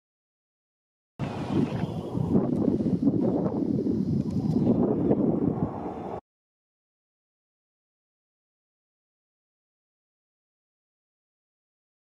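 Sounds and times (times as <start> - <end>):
jet airliner flying overhead: 1.2 - 6.2.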